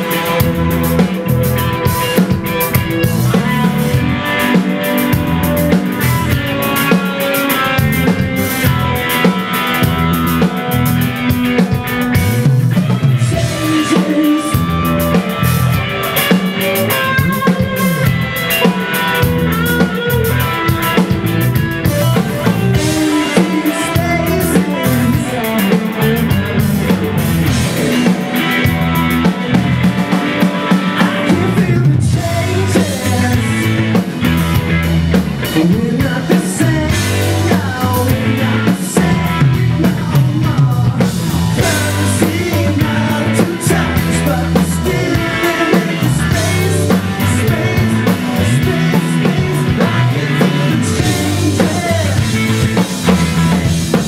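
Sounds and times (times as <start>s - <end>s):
bass guitar: 0.0s - 54.0s
distorted electric guitars: 0.0s - 54.0s
drum kit beat: 0.0s - 54.0s.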